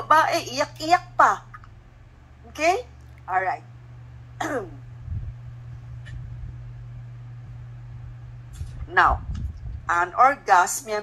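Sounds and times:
steady low hum: 0:00.0 - 0:11.0
person clearing throat: 0:04.4 - 0:04.8.

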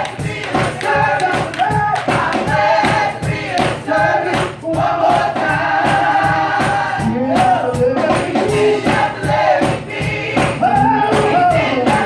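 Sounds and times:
choir singing in parts: 0:00.0 - 0:12.0
drums keeping a steady beat: 0:00.0 - 0:12.0
bass guitar: 0:07.0 - 0:08.7, 0:10.4 - 0:12.0.

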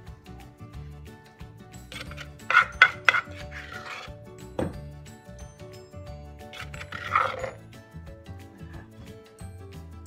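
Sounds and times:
ladle scraping inside mortar: 0:01.9 - 0:04.2, 0:06.5 - 0:07.6
ladle knocking on earthenware mortar: 0:01.9 - 0:04.8.

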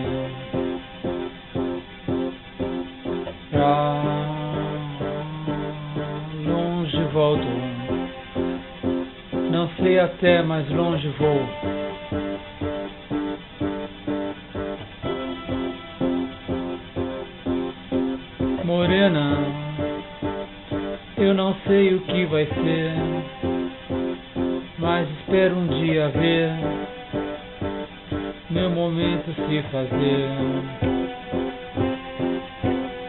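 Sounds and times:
guitar strumming chords: 0:00.0 - 0:33.0.

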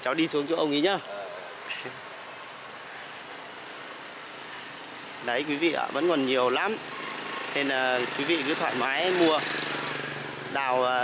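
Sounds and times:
outdoor hiss-like hum: 0:00.0 - 0:06.6.

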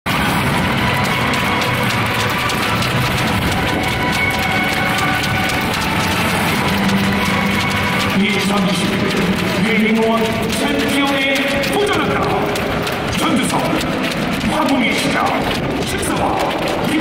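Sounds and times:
music over public address: 0:00.1 - 0:17.0
crackle of fine clicks: 0:00.8 - 0:17.0.

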